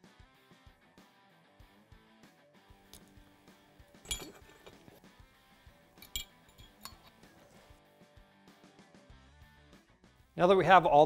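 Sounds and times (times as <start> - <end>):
faint background music: 1.0 - 11.0
light metal clinks: 4.0 - 5.0, 6.0 - 7.5.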